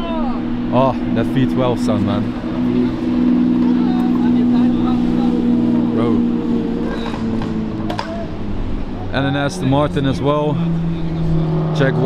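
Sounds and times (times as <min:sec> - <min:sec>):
sports car engine at low revs: 0:00.0 - 0:12.0.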